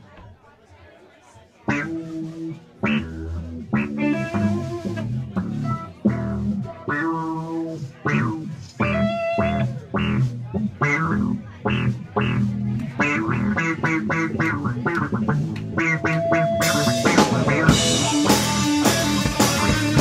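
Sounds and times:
electric bass: 0:01.7 - 0:20.0
electric guitar choppy phrases: 0:01.7 - 0:20.0
funk rock band playing: 0:01.7 - 0:20.0.

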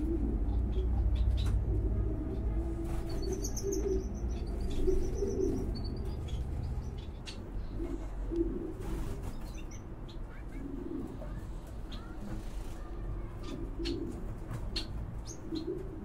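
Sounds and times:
bird cooing: 0:00.0 - 0:09.0, 0:10.3 - 0:16.0.

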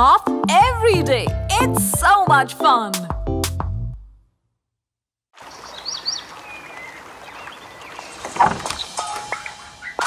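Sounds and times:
birds chirping: 0:05.4 - 0:10.0.

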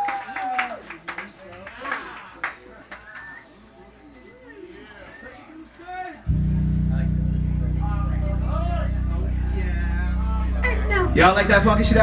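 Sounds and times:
faint voices: 0:01.0 - 0:12.0
amplified low bass note: 0:06.3 - 0:12.0.

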